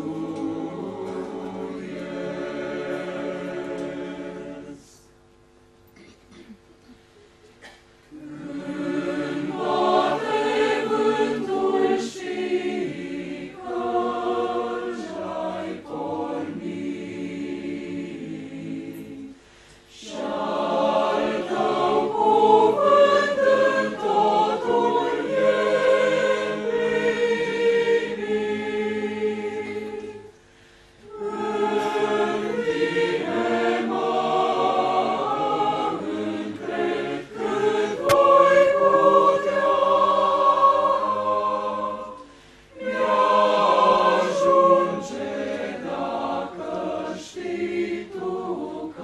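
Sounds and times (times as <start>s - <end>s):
church choir singing: 0.0s - 5.1s, 8.1s - 30.4s, 31.0s - 49.0s.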